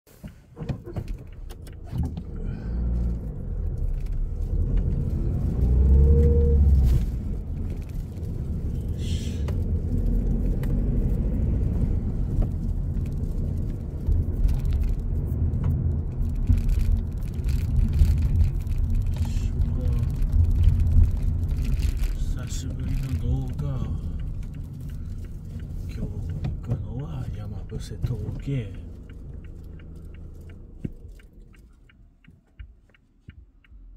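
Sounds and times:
car engine and tyre rumble: 0.0s - 33.9s.

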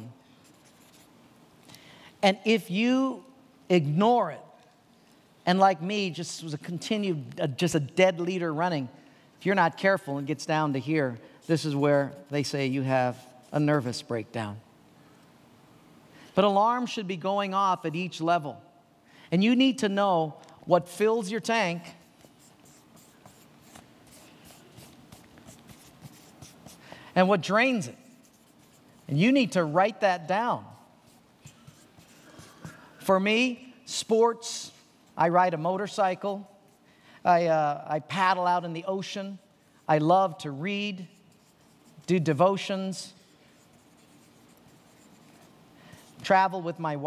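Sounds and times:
marker pen scratching on paper: 0.4s - 1.2s, 21.8s - 26.9s, 27.7s - 29.6s, 30.7s - 33.0s, 41.2s - 42.2s, 43.5s - 46.2s.

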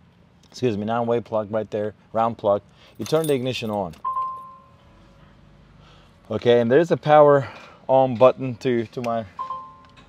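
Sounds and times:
two-tone dashboard chime: 4.0s - 4.8s, 9.4s - 9.9s.

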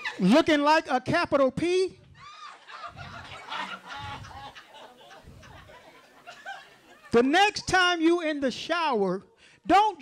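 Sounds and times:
audience laughing and hooting: 2.2s - 7.1s.

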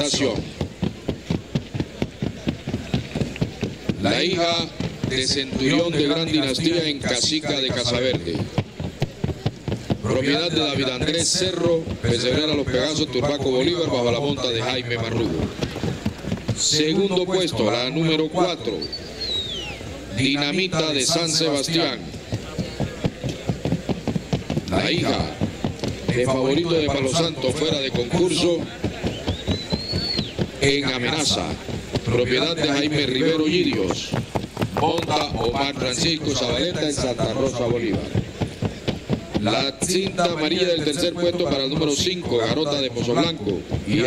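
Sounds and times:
horse hooves striking track: 0.0s - 44.0s.

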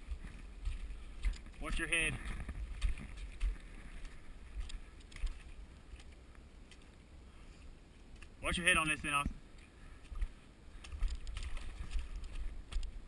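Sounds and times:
footsteps on wet gravel and mud: 0.0s - 13.0s.

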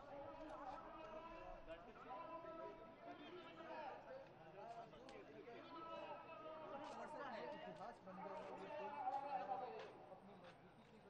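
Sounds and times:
faint crowd chatter: 0.0s - 11.0s.

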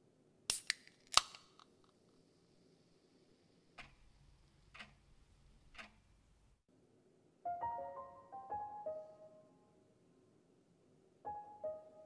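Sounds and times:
can opening crack and fizz: 0.5s - 1.7s.

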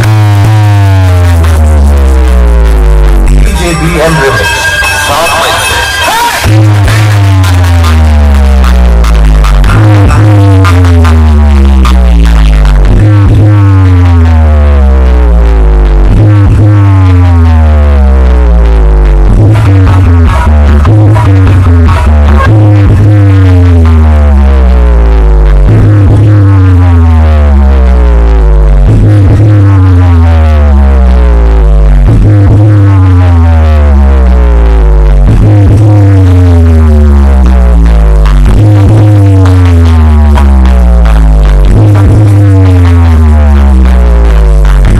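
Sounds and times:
electronic dance music: 0.0s - 44.9s
heavy bass note: 0.0s - 44.9s
falling pitch sweeps: 3.4s - 7.6s.

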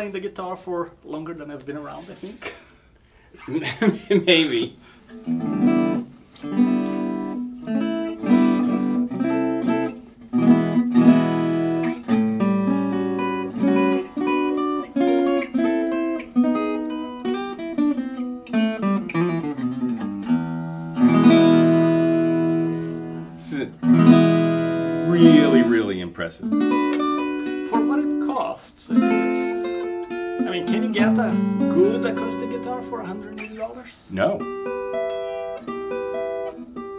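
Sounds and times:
acoustic guitar plucked notes and chords: 5.0s - 36.9s.

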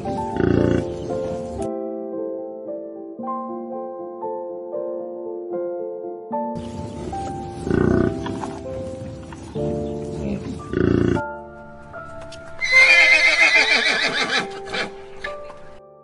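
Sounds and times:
soft piano music: 0.0s - 16.0s
horse whinnying: 12.6s - 15.5s.

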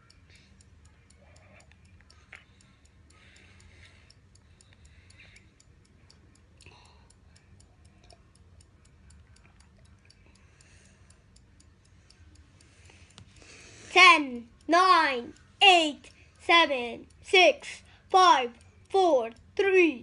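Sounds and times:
fast ticking of countdown timer: 0.0s - 20.0s.

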